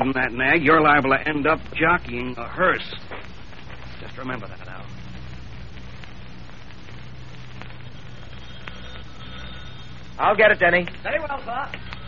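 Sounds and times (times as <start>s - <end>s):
low hum: 0.0s - 12.0s
recording hiss: 0.0s - 12.0s
faint clicks: 1.6s - 12.0s.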